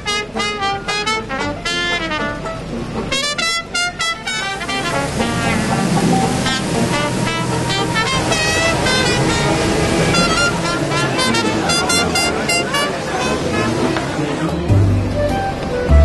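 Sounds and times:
short pitched notes: 0.0s - 16.0s
steady low bass: 4.6s - 12.6s, 13.4s - 16.0s.

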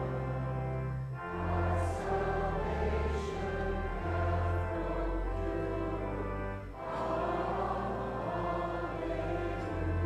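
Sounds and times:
choir singing a hymn: 0.0s - 10.0s
church organ: 0.0s - 10.0s.

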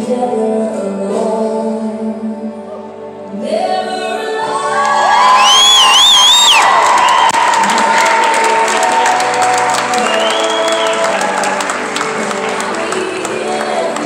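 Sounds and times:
song with singing: 0.0s - 5.9s, 7.5s - 14.0s
audience cheering: 4.8s - 13.6s
scattered clapping: 6.5s - 14.0s.

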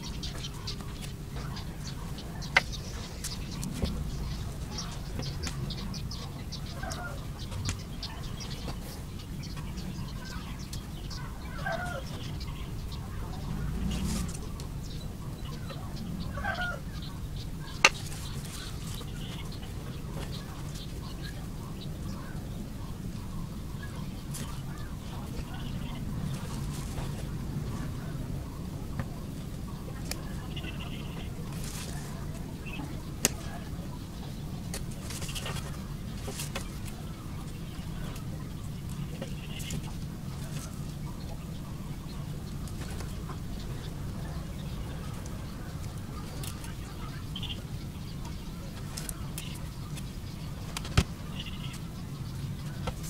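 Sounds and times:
bird calling: 0.0s - 53.0s
steady low hum: 0.0s - 53.0s
steady low rumble: 0.0s - 53.0s.

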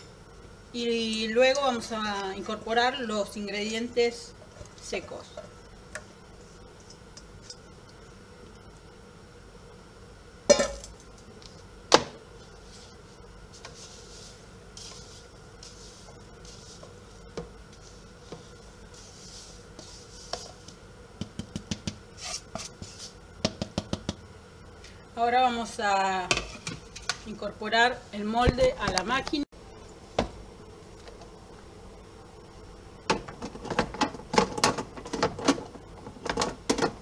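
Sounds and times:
metal bowl clanking on countertop: 10.5s - 10.9s.

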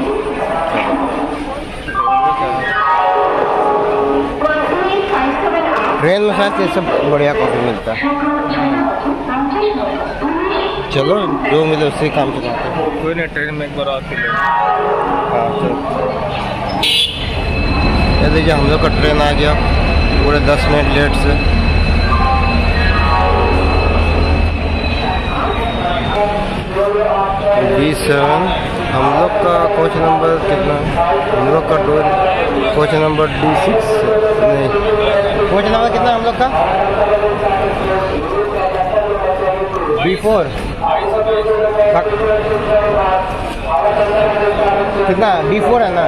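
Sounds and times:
voices: 0.0s - 46.0s
public-address chime: 1.8s - 4.9s, 14.2s - 26.6s
deep rumble of train coaches: 12.1s - 45.8s
high-pitched train squeal: 16.8s - 26.7s.

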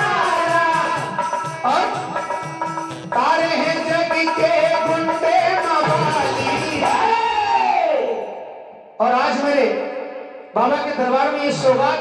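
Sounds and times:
musical accompaniment: 0.0s - 7.4s.

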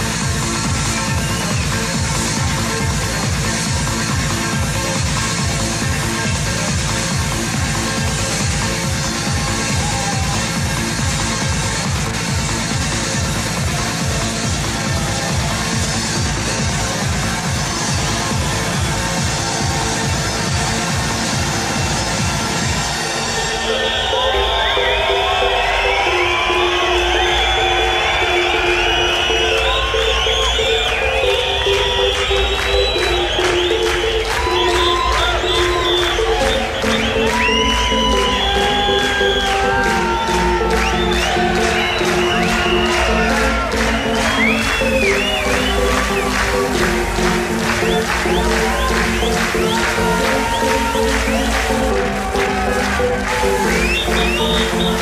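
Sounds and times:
crowd cheering and whistling: 0.0s - 55.0s
electronic dance music: 0.0s - 55.0s.

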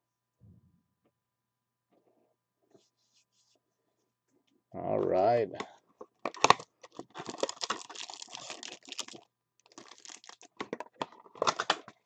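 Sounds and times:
faint scratching and rustling: 2.0s - 4.5s.

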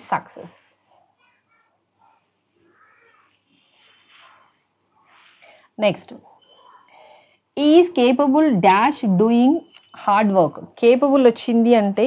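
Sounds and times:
faint animal calls: 1.2s - 3.7s, 6.2s - 7.3s.

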